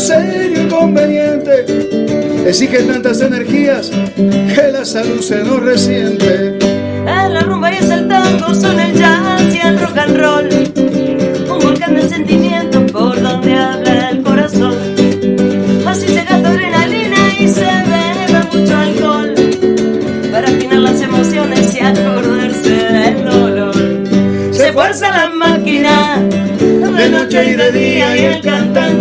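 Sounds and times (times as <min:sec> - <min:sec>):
person singing: 0:00.0 - 0:19.6, 0:20.2 - 0:29.0
strummed classical guitar: 0:00.0 - 0:29.0.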